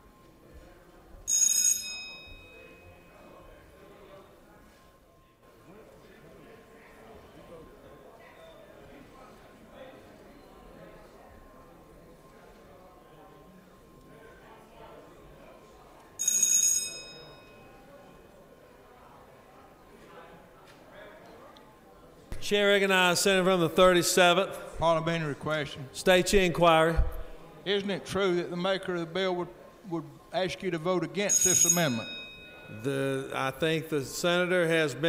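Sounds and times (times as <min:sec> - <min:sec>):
murmur of voices: 0:00.0 - 0:35.0
bright bell ring: 0:01.3 - 0:03.2, 0:16.2 - 0:17.8, 0:31.3 - 0:33.0.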